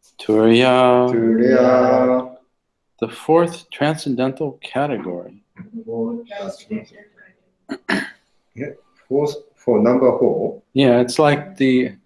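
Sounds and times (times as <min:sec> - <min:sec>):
person speaking: 0:00.0 - 0:02.4, 0:03.0 - 0:12.0
person clearing throat: 0:07.7 - 0:08.7.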